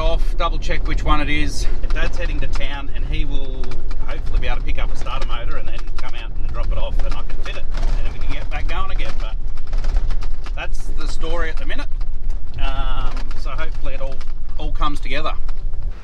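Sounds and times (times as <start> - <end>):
man talking: 0.0 - 9.4, 10.6 - 11.9, 12.6 - 15.4
engine and road rumble: 0.0 - 16.0.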